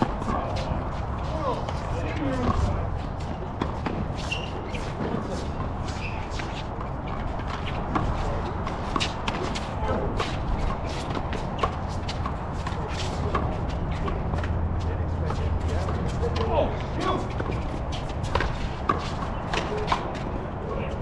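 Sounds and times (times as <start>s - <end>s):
sneakers squeaking on court: 0.1s - 14.6s, 17.1s - 20.1s.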